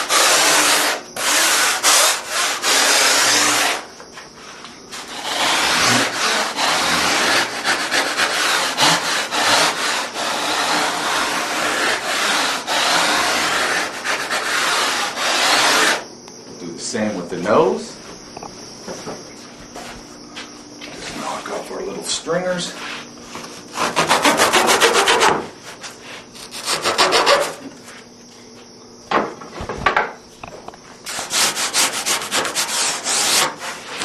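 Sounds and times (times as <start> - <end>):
rasp scraping foam: 0.0 - 3.9, 4.9 - 16.0, 23.7 - 25.4, 26.3 - 27.6, 31.1 - 34.0.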